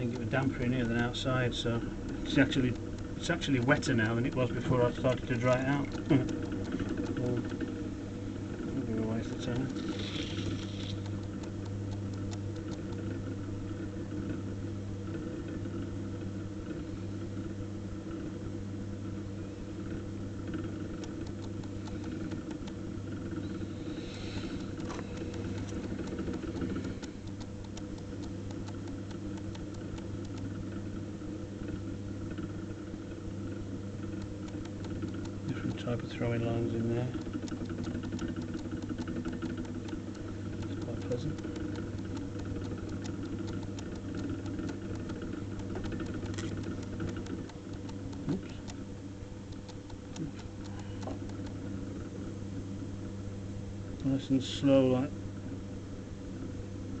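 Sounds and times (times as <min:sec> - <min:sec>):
potter's wheel motor humming: 0:00.0 - 0:52.4.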